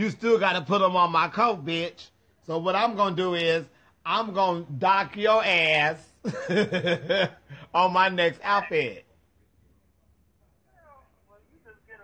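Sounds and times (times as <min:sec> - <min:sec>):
faint low hum: 0:06.1 - 0:12.0
faint voice over phone speaker: 0:08.6 - 0:12.0.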